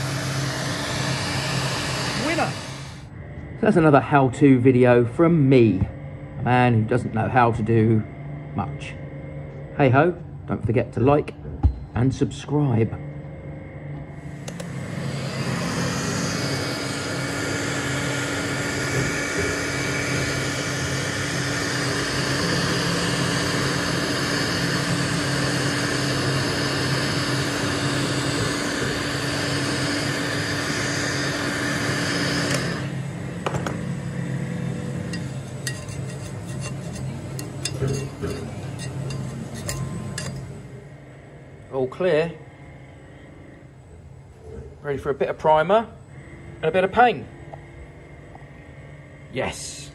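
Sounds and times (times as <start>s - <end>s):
heat gun fan humming: 0.0s - 6.0s, 13.6s - 44.0s.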